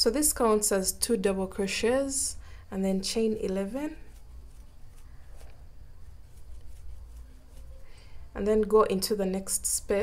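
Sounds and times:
low room hum: 0:00.0 - 0:10.0
yarn rustling through crochet hook: 0:02.8 - 0:09.8.

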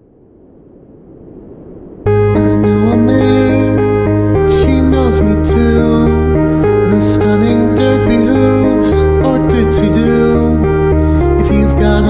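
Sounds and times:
music: 0:02.1 - 0:12.0.

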